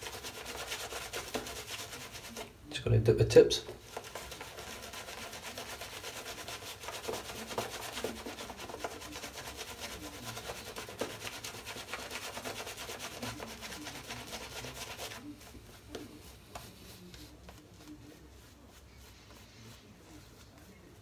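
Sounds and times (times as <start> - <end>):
shaving brush scrubbing lather: 0.0 - 2.5, 3.5 - 21.0.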